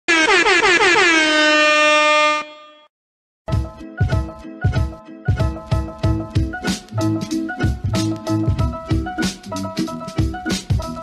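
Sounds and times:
air horn blasts: 0:00.1 - 0:02.9
music with a beat: 0:03.5 - 0:11.0.

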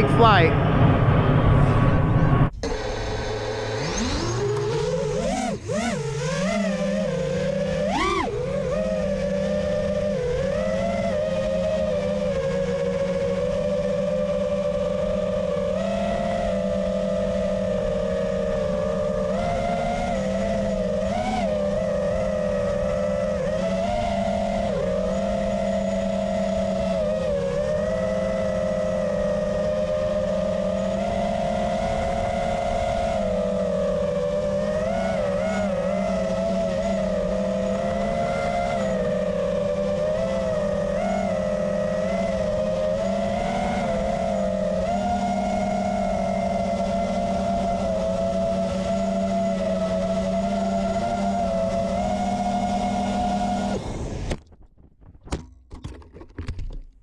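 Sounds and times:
drone motors whining: 0:00.0 - 0:56.5.

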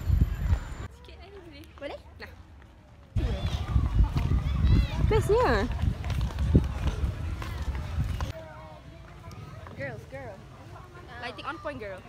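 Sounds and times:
wind buffeting microphone: 0:00.0 - 0:00.9, 0:03.2 - 0:08.4
people chatting: 0:03.2 - 0:12.0.

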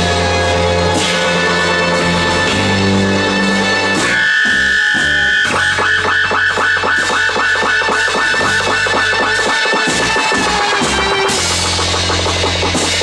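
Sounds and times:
electric bass: 0:00.0 - 0:13.0
synthesizer notes: 0:00.0 - 0:13.0.

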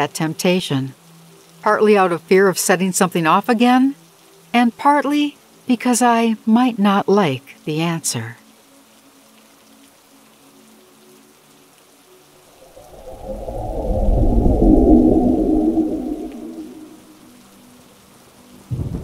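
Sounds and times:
faint low droning tones: 0:12.6 - 0:17.2
rolling thunder: 0:12.6 - 0:17.2.

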